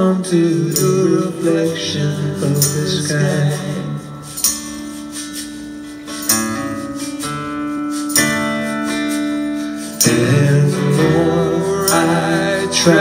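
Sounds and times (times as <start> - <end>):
acoustic guitar strumming: 0.0 - 13.0
tambourine jingling: 0.0 - 13.0.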